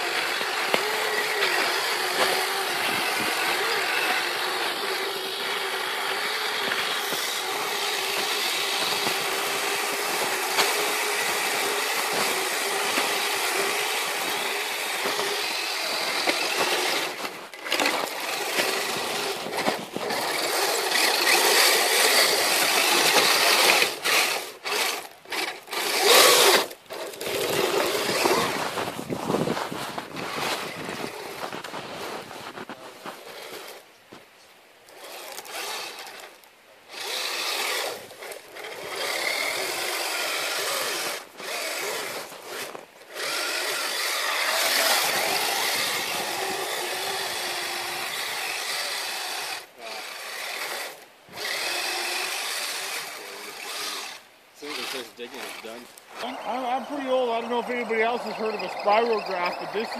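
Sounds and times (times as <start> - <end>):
electric motor and gearbox whining: 0.0 - 33.9, 34.9 - 59.9.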